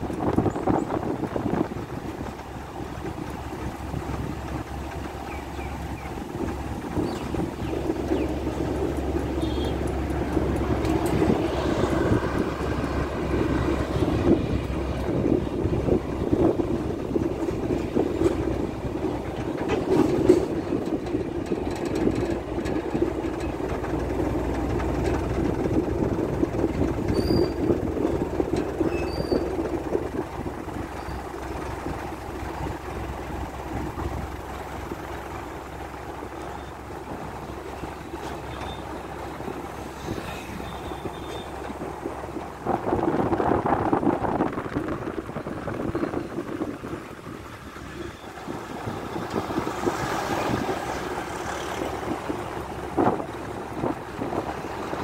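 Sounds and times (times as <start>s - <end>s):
vehicle body rattle: 0.0s - 55.0s
vehicle road noise: 0.0s - 55.0s.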